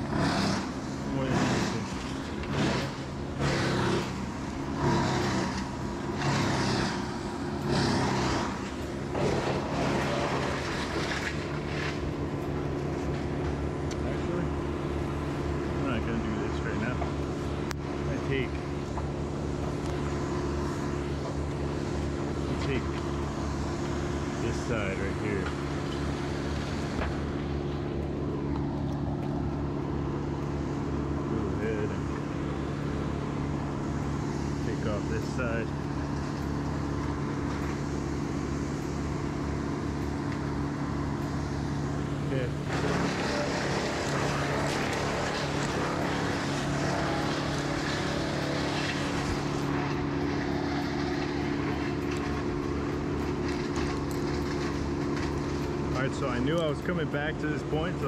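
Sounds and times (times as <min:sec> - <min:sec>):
engine humming: 0:00.0 - 0:58.0.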